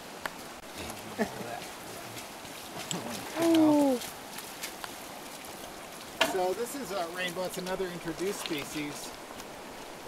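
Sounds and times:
creek running over rocks: 0.0s - 10.0s.

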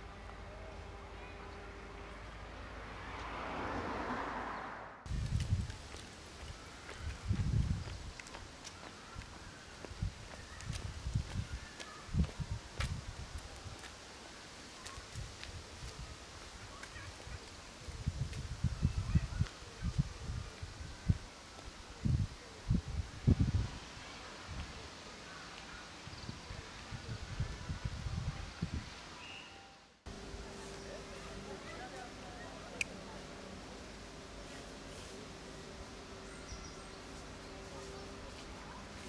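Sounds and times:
faint outdoor ambience: 0.0s - 39.0s
wind buffeting microphone: 5.1s - 8.4s, 9.1s - 13.8s, 17.3s - 21.3s, 22.0s - 23.9s, 26.1s - 29.0s.

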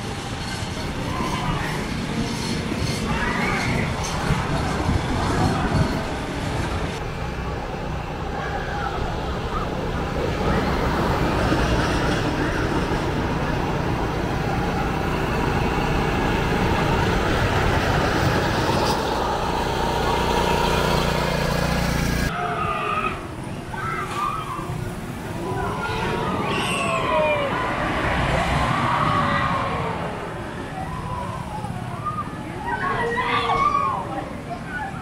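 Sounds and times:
roller coaster rumbling on wooden track: 0.0s - 22.3s, 23.1s - 35.0s
voices: 0.0s - 35.0s.

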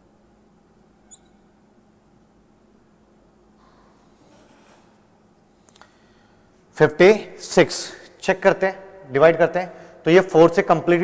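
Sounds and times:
low steady hum: 0.0s - 11.0s
marker squeaking on whiteboard: 1.1s - 1.4s.

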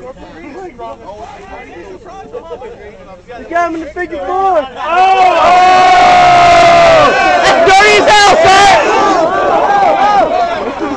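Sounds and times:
men yelling and hollering: 3.5s - 10.9s.

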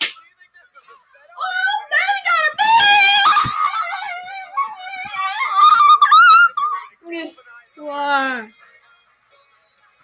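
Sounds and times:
person screaming and wailing: 2.6s - 7.0s.

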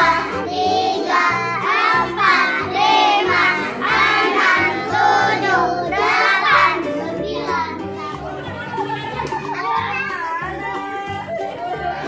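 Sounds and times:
children singing: 0.0s - 8.6s
children's song with bass beat: 0.0s - 12.0s.

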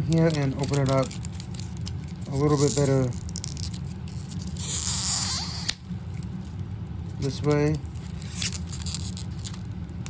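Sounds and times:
plastic wrapping tearing: 0.0s - 6.5s, 7.2s - 10.0s.

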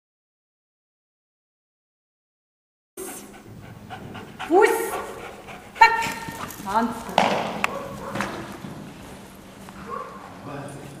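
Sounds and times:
dog panting hard: 3.0s - 8.2s.

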